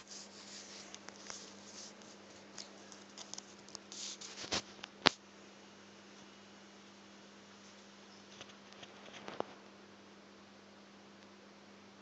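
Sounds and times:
faint rustling: 0.0s - 4.9s
low steady hum: 0.0s - 12.0s.

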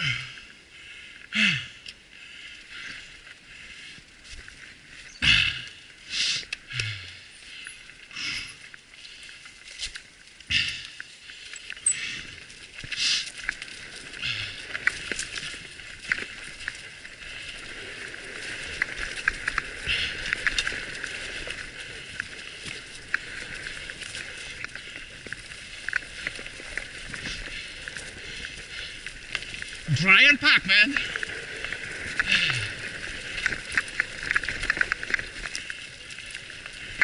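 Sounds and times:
bicycle tyres crunching leaves: 0.0s - 37.0s
bike clicks and rattles: 1.2s - 30.1s, 30.8s - 37.0s.

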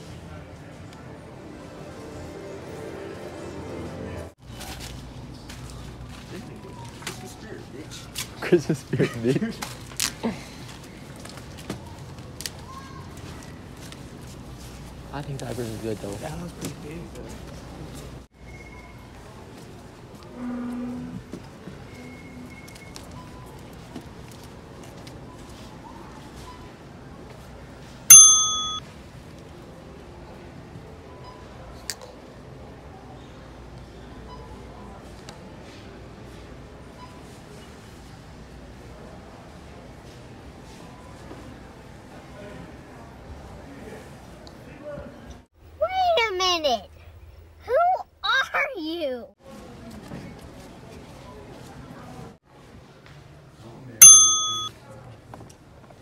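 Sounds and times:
bell-like ding: 28.1s - 28.8s, 54.0s - 54.7s.

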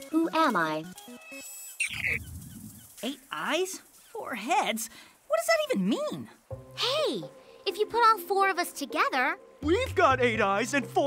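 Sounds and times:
cartoon bird-like chirp: 1.7s - 3.0s.

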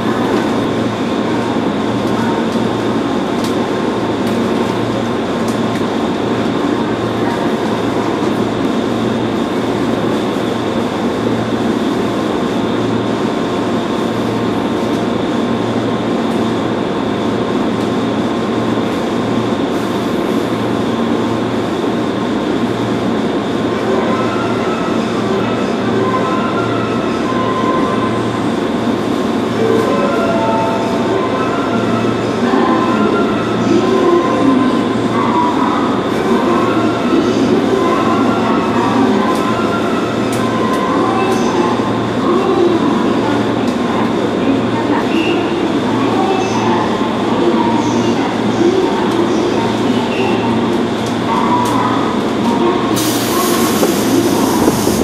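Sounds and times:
train equipment humming: 0.0s - 55.0s.

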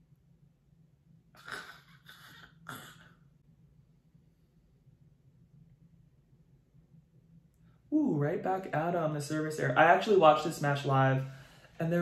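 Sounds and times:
low steady hum: 0.0s - 12.0s
close breathing: 11.2s - 11.8s.

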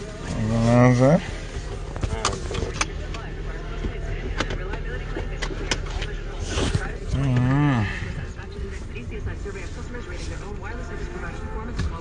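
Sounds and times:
car rumble on the move: 0.0s - 12.0s.

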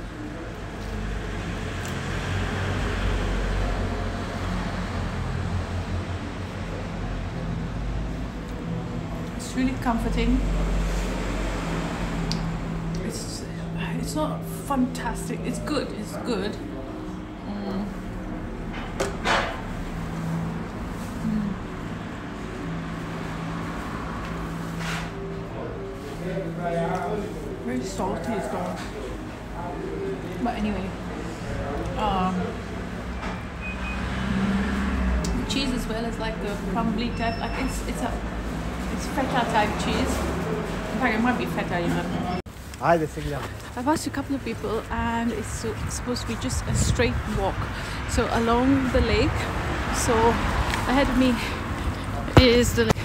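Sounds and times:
vehicle engine rumble: 29.1s - 53.0s.

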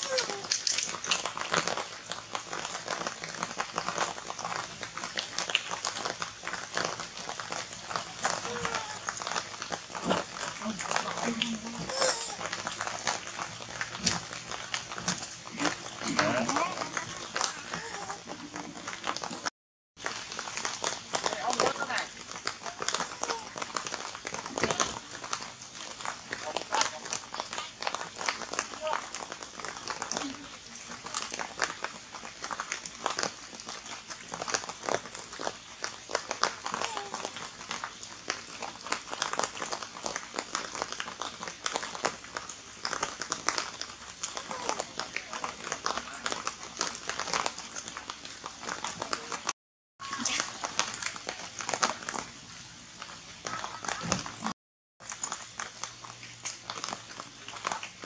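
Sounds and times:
crinkling and clicking crackles: 0.0s - 58.0s.

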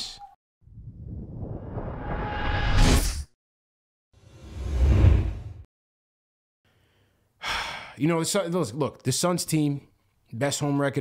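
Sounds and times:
man breathing: 6.7s - 8.0s
man speaking: 8.0s - 11.0s.

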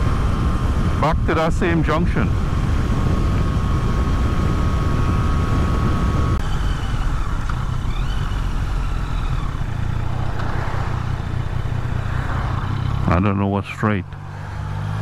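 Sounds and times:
thin steady whine: 0.0s - 14.6s
motorcycle engine running: 0.0s - 15.0s
road and wind noise: 0.0s - 15.0s.

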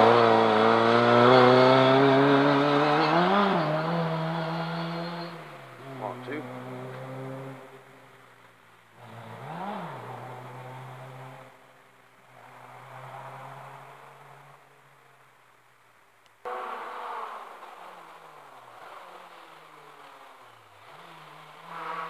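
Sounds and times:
rally car engine revving: 0.0s - 14.8s, 16.4s - 22.0s.

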